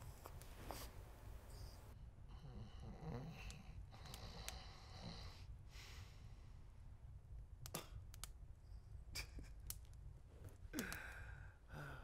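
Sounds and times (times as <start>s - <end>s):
low room hum: 0.0s - 12.0s
person sighing: 10.7s - 12.0s.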